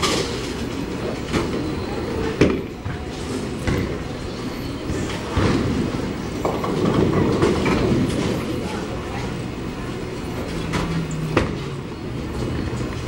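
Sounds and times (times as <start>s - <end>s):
bowling balls rolling: 4.8s - 8.9s.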